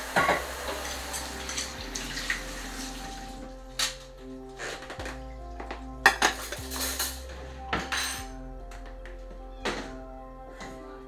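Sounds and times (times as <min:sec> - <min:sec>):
dishes and cutlery clattering: 0:00.2 - 0:00.4, 0:03.8 - 0:10.0.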